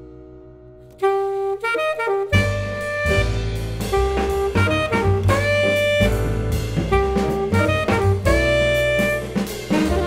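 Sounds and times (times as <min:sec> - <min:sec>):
double bass notes: 0:00.0 - 0:10.0
alto saxophone jazz phrase: 0:00.9 - 0:10.0.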